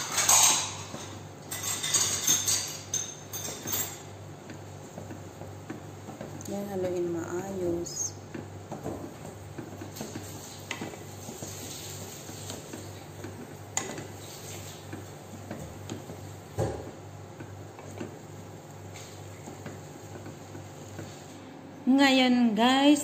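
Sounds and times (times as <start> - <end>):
low steady hum: 0.0 - 23.0
spatula scraping and knocking pot: 8.3 - 18.3.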